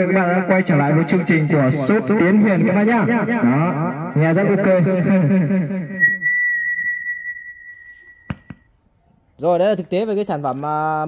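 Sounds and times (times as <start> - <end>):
high-pitched feedback whistle: 5.9 - 8.7.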